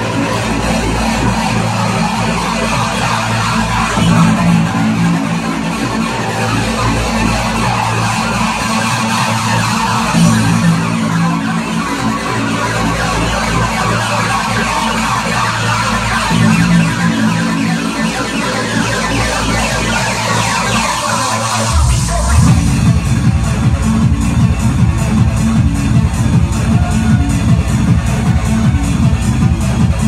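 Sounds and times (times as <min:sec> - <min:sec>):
loud electronic dance music: 0:00.0 - 0:30.0.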